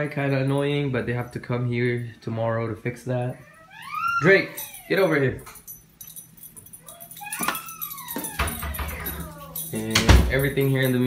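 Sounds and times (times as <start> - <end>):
small dog whimpering: 3.4 - 5.2, 6.8 - 9.8.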